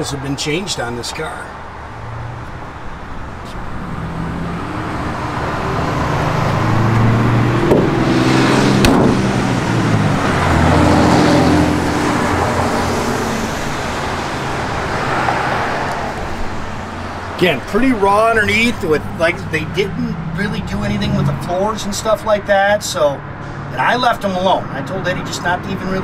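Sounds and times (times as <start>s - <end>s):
vehicle passing on street: 0.0s - 26.0s.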